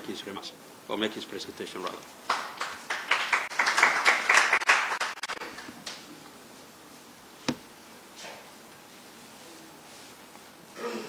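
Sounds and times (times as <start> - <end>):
audience applause: 2.3 - 5.7.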